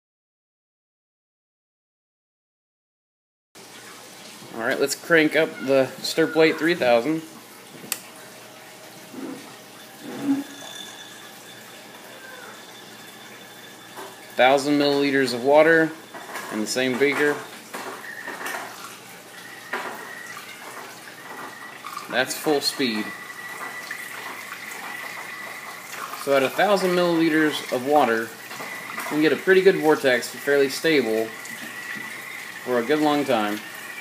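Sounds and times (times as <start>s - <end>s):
water swirling in glass beaker: 8.8s - 34.0s
faint high whine: 9.1s - 18.6s, 19.3s - 34.0s.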